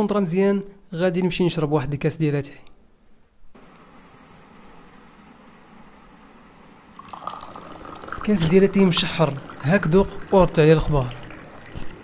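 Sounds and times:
tea pouring into a glass: 7.0s - 12.0s.

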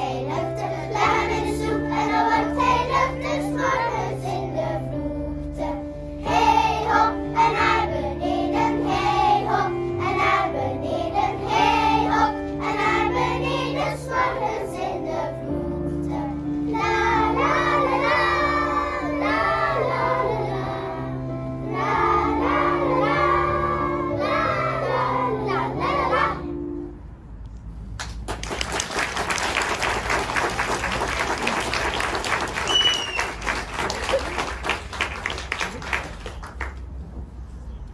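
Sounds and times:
children's choir singing: 0.0s - 26.7s.

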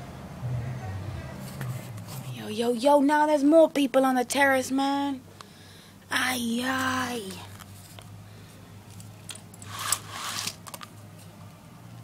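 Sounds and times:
steady low hum: 0.0s - 12.0s
blind slats rustling clatter: 9.2s - 11.4s.

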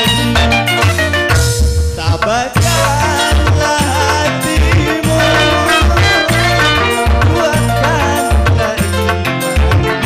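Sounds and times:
electronic keyboard dance music: 0.0s - 10.0s.

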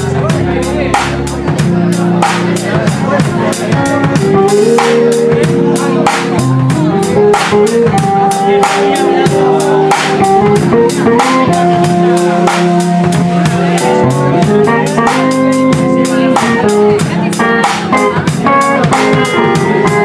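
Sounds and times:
drum kit beat: 0.0s - 20.0s
rock blues band playing: 0.0s - 20.0s.

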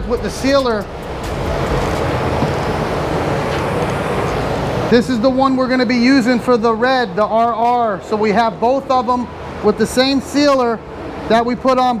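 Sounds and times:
steady rushing air: 0.0s - 5.4s.

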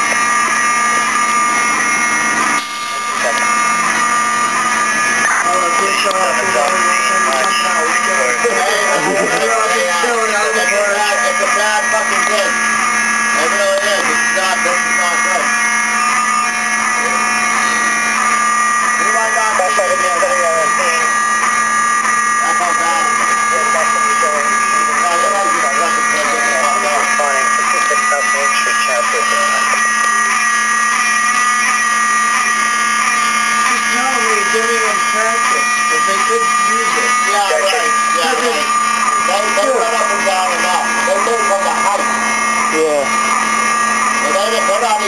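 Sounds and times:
fire alarm steady tone: 0.0s - 45.0s
people talking: 3.0s - 3.5s, 5.3s - 12.6s, 13.4s - 15.6s, 19.0s - 21.2s, 22.4s - 30.0s, 33.6s - 42.1s, 42.7s - 43.2s, 44.2s - 45.0s.

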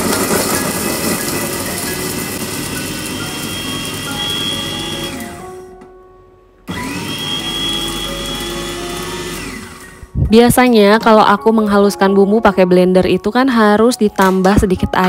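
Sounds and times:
electric food chopper whining: 0.0s - 5.7s, 6.7s - 10.2s.

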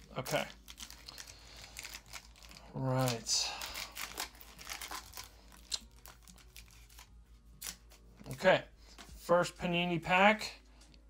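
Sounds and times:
foil wrapper tearing and crinkling: 0.0s - 8.4s.

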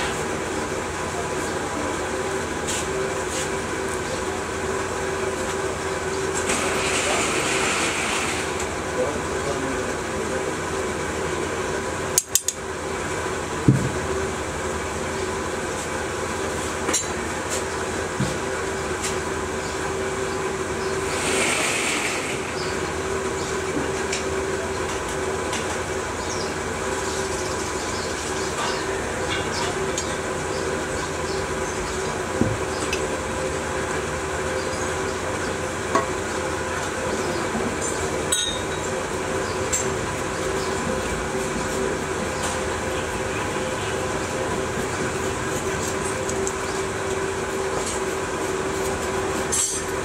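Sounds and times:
motor drone: 6.0s - 11.0s, 19.4s - 28.6s.

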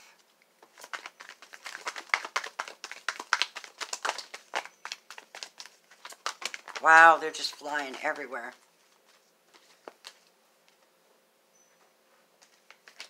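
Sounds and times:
cards being shuffled by hand: 0.6s - 10.8s, 12.4s - 13.0s.

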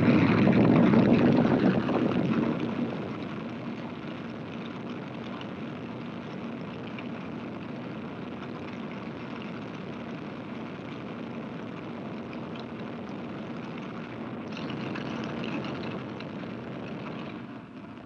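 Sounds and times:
rocket engine roaring: 0.0s - 5.6s.

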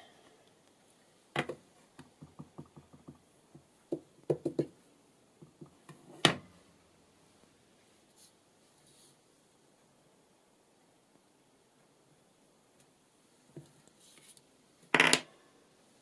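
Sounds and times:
stamp knocking on tabletop: 1.4s - 4.8s.

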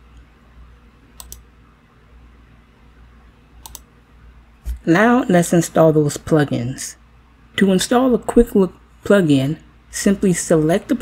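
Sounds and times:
faint low hum: 0.0s - 11.0s
computer mouse double clicks: 3.6s - 3.9s.

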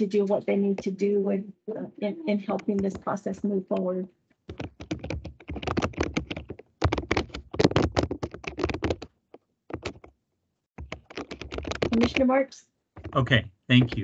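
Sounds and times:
typing on computer keyboard: 2.4s - 3.9s, 4.5s - 9.1s, 9.7s - 10.1s, 10.8s - 12.4s.

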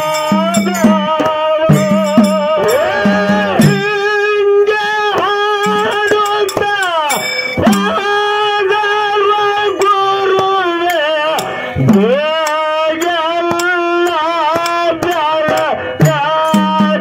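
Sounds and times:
drum strokes: 0.0s - 4.4s, 5.1s - 8.2s, 9.8s - 17.0s
man singing devotional folk song: 0.0s - 17.0s.

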